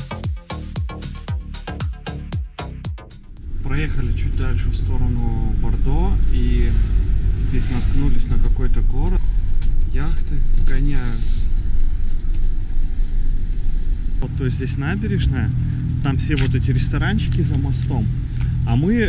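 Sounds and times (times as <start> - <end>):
engine and road rumble: 0.0 - 19.0.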